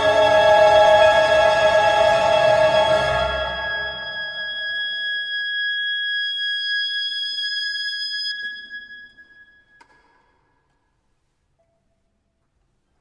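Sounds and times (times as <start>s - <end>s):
oboe and string orchestra: 0.0s - 5.1s.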